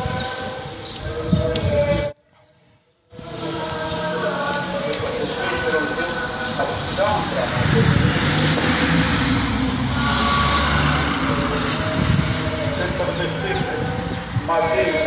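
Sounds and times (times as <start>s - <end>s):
male voices chanting: 0.0s - 2.2s, 3.1s - 15.0s.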